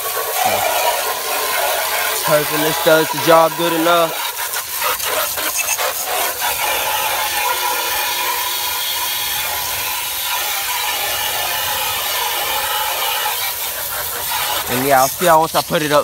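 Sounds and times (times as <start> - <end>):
hose spraying water on plastic: 0.0 - 16.0.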